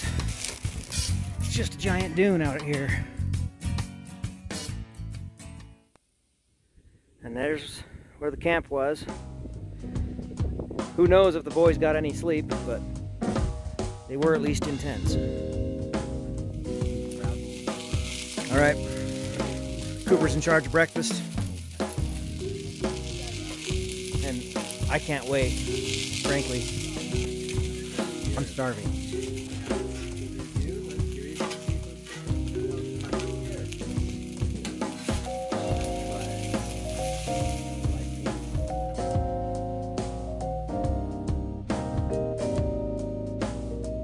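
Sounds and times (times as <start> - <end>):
music with held notes: 9.3 - 44.0
food sizzling on griddle: 17.1 - 38.7.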